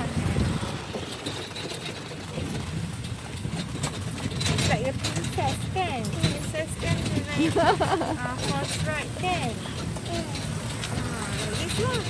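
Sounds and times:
horse-drawn carriage rumbling: 0:00.0 - 0:12.0.

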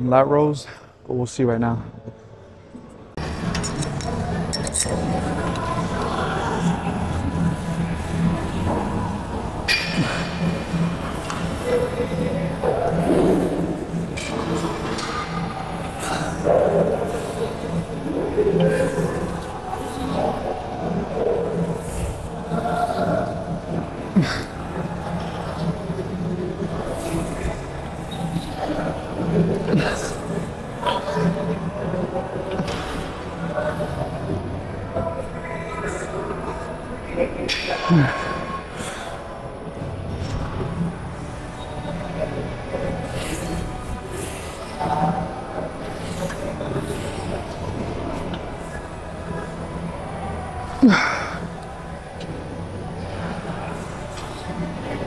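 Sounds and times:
steady low hum: 0:01.7 - 0:55.0
indistinct voices: 0:03.2 - 0:55.0.

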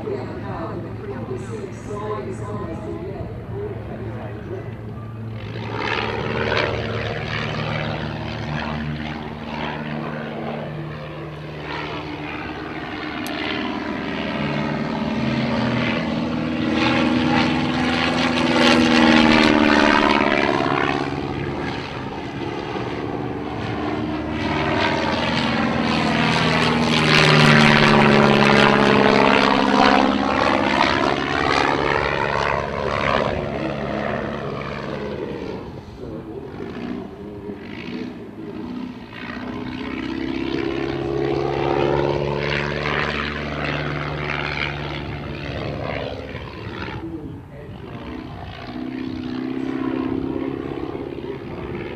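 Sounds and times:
biplane engine and propeller passing: 0:00.0 - 0:51.9.

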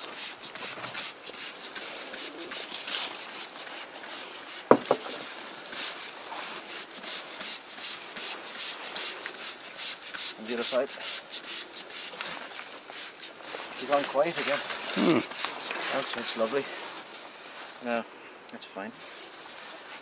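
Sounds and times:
rubbing and handling noise: 0:00.0 - 0:17.9.

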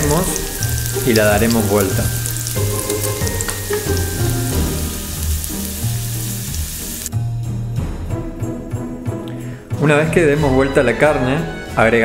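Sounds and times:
beef sizzling with small pops: 0:00.0 - 0:07.1
background music: 0:00.0 - 0:12.0.

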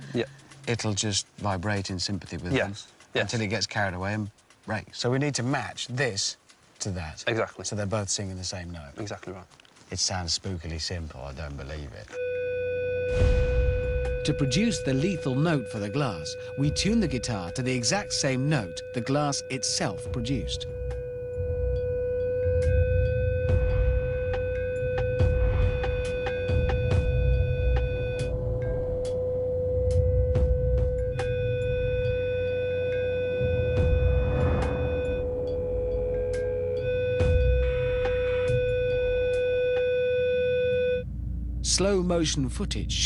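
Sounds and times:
loud pure tone: 0:12.2 - 0:43.0
low uneven rumble: 0:40.9 - 0:43.0.

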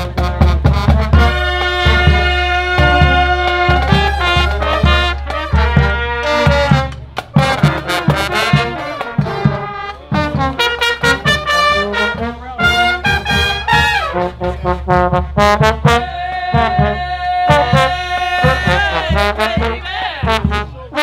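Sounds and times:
sharp percussive beat: 0:00.0 - 0:20.8
brass band playing upbeat tune: 0:00.0 - 0:21.0.

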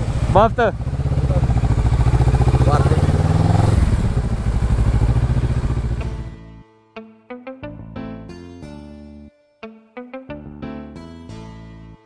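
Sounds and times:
motorcycle engine at low revs: 0:00.0 - 0:06.4.

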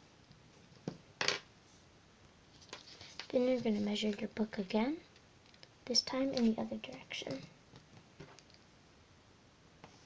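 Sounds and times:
paper rustling on table: 0:02.5 - 0:04.2.

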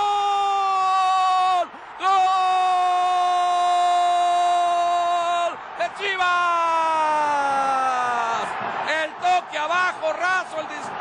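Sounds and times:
sportscaster shouting goal cry: 0:00.0 - 0:11.0.

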